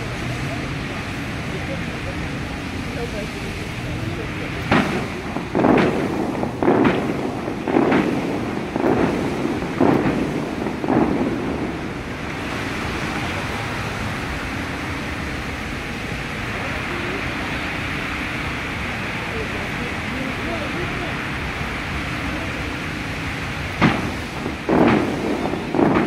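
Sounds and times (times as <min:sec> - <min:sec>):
crowd noise: 0:00.0 - 0:26.0
fountain water shooters whooshing: 0:00.0 - 0:26.0.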